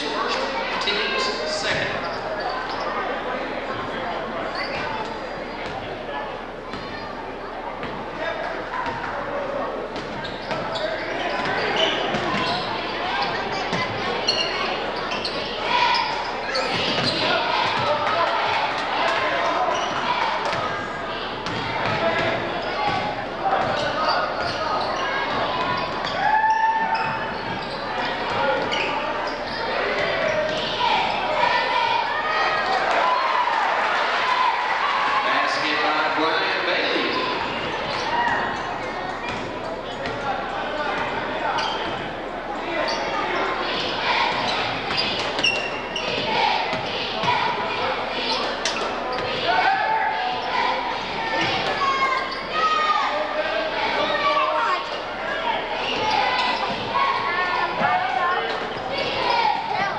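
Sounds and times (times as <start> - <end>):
crowd chatter: 0.0 - 59.9
people shouting: 26.1 - 27.1, 49.2 - 59.9.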